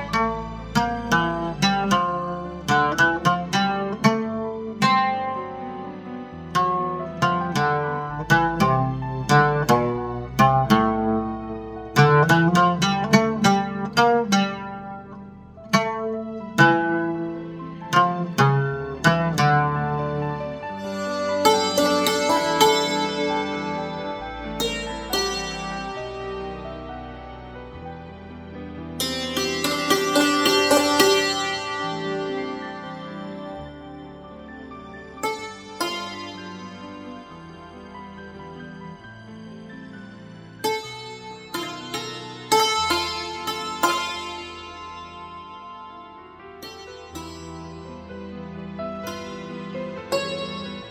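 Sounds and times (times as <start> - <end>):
hammered dulcimer melody: 0.0 - 50.9.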